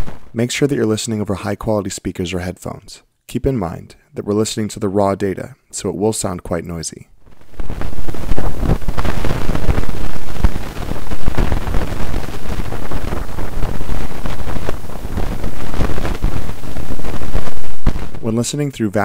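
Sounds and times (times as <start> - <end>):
dense rough bass-heavy noise: 0.0 - 0.4, 7.2 - 18.4.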